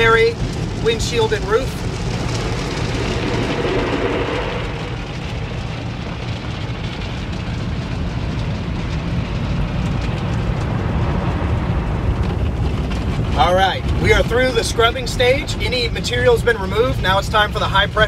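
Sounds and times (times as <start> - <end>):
car wash brushing and spraying: 0.0 - 18.0.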